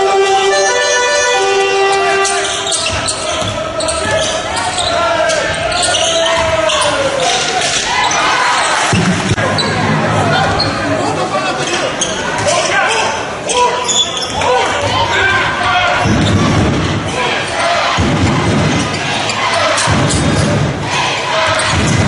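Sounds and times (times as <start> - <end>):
spectators talking and calling out: 0.0 - 22.0.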